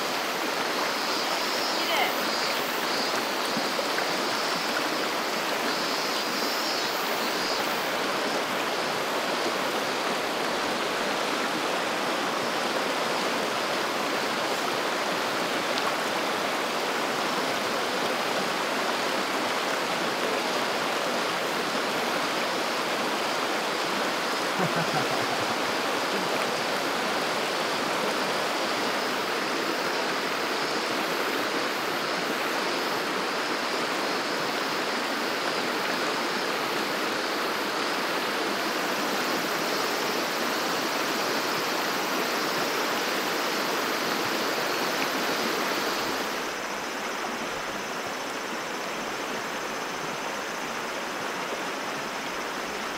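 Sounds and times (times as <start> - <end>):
stream rushing over rocks: 0.0 - 52.9.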